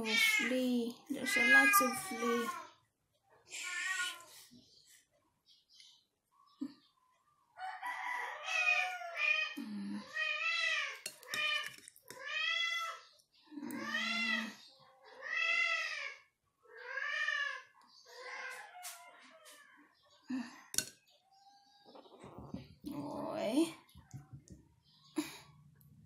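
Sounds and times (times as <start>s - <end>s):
kitten meowing: 1.3s - 2.6s.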